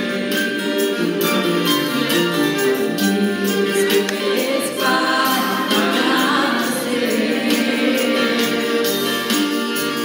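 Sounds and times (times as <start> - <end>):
choir singing: 0.0 - 9.3.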